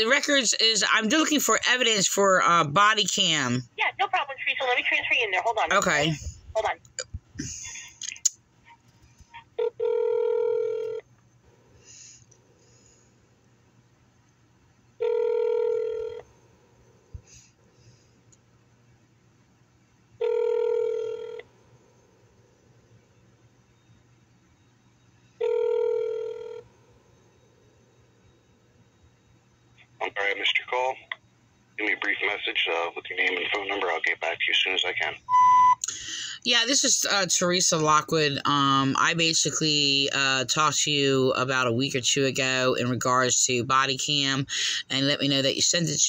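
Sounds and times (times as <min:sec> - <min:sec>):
telephone ringback tone: 0:09.6 - 0:11.0, 0:15.0 - 0:16.2, 0:20.2 - 0:21.5, 0:25.4 - 0:26.7
short beep: 0:35.3 - 0:35.8.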